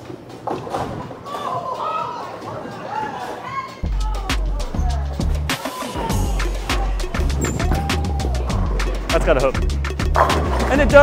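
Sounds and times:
music: 0.0s - 11.0s.

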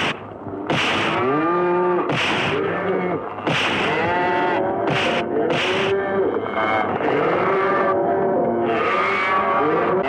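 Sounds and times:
cattle mooing: 1.1s - 10.0s.

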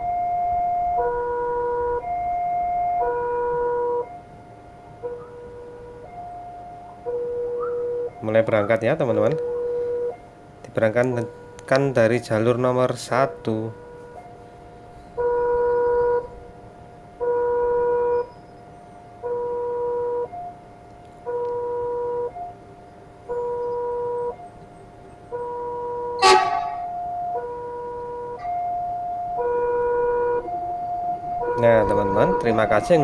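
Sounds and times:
electric train rumble: 0.0s - 33.0s
level crossing two-tone alarm: 0.0s - 33.0s
loud train horn blast: 26.2s - 27.0s.

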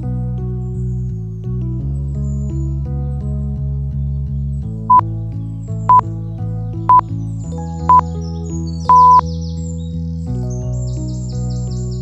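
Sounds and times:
high bird-like chirps: 8.8s - 9.3s
loud high beep: 8.9s - 9.2s.

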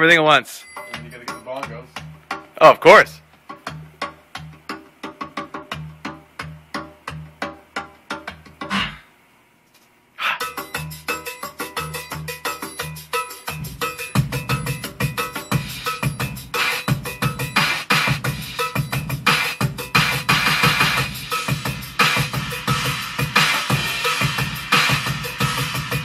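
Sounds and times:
bongos: 3.3s - 9.0s
heavy low drum: 13.6s - 26.0s.

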